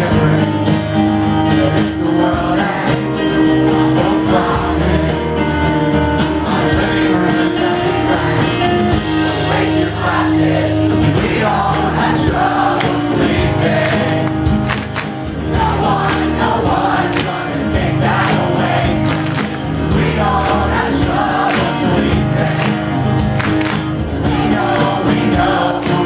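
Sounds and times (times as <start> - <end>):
person singing lead vocal: 0.0 - 14.7, 15.4 - 23.4, 24.2 - 26.0
drums keeping a steady beat: 0.0 - 26.0
strummed acoustic guitars: 0.0 - 26.0.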